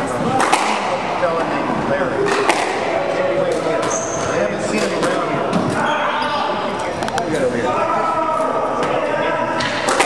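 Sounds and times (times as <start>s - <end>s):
squash ball hitting racquets and walls: 0.0s - 5.9s, 9.6s - 10.0s
indistinct chatter: 0.0s - 10.0s.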